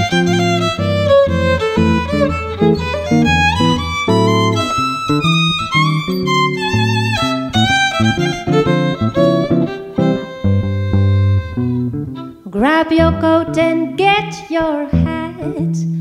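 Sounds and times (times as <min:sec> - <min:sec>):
archtop guitar chords: 0:00.0 - 0:16.0
violin swing jazz solo: 0:00.0 - 0:16.0.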